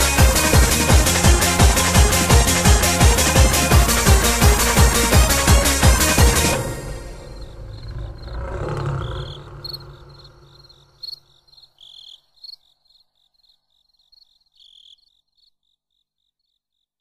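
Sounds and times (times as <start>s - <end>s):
crickets chirping: 6.6s - 16.9s
lion roaring: 6.7s - 11.0s.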